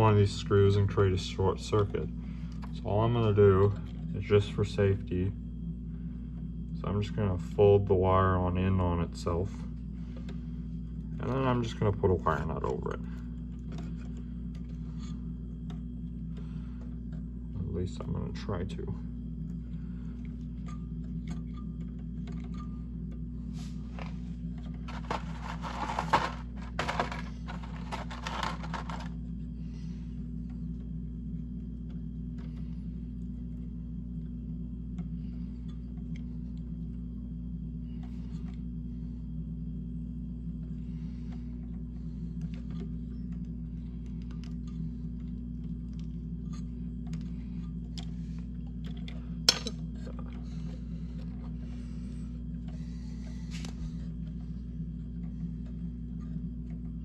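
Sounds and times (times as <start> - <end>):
steady low hum: 0.0 - 57.0
scraping and rustling: 23.6 - 29.2.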